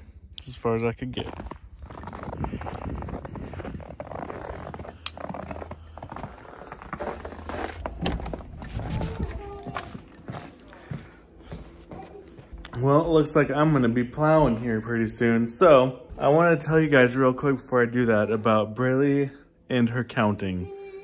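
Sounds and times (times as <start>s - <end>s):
footsteps crunching in snow: 1.2s - 12.9s.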